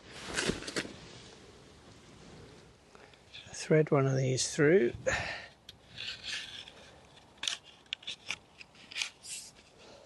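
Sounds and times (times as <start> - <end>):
string rustling through netting: 0.0 - 3.6, 5.8 - 10.0.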